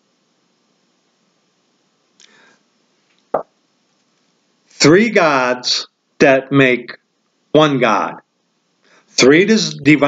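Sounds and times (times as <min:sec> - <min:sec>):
man breathing in: 0:02.2 - 0:02.7, 0:08.8 - 0:09.2.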